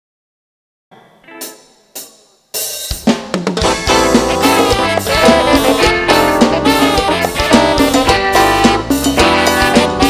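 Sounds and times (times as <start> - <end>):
live cumbia band: 2.9 - 10.0.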